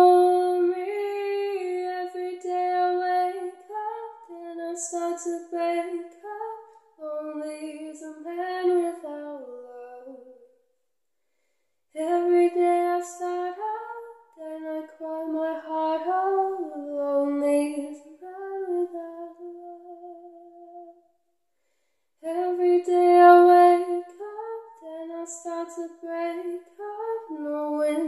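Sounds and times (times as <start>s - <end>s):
woman singing unaccompanied: 0.0s - 10.4s, 12.0s - 20.9s, 22.2s - 28.0s.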